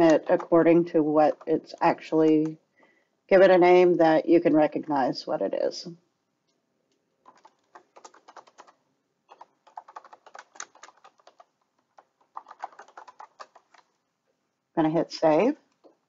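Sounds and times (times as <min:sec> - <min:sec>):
typing on computer keyboard: 0:00.0 - 0:02.6, 0:07.2 - 0:13.9.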